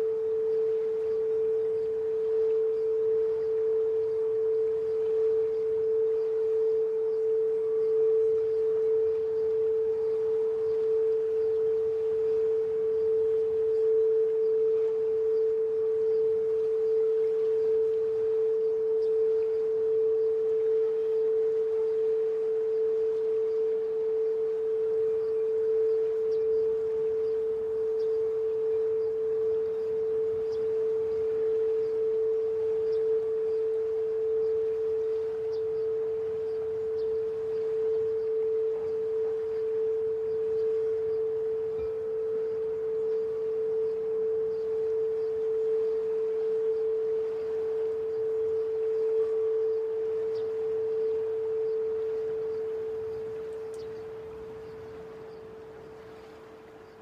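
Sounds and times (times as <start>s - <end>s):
crystal singing bowl tone: 0.0s - 57.0s.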